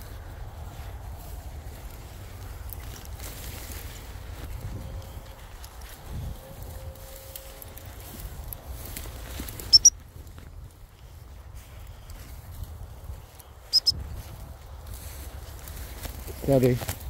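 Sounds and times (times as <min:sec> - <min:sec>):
rustling through rough grass: 0:00.0 - 0:17.0
wind rumble on microphone: 0:00.0 - 0:17.0.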